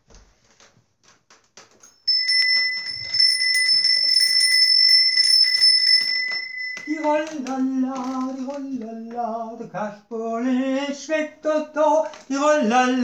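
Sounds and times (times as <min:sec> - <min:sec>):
small bell ringing: 0:01.8 - 0:08.2.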